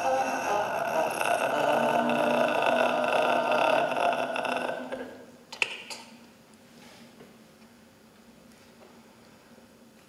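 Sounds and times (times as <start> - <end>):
voices droning together: 0.0 - 5.2.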